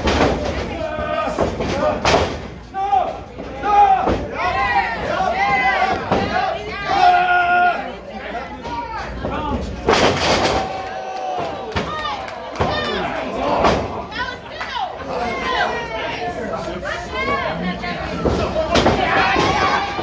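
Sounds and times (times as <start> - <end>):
crowd shouting: 2.8 - 9.1, 10.4 - 20.0.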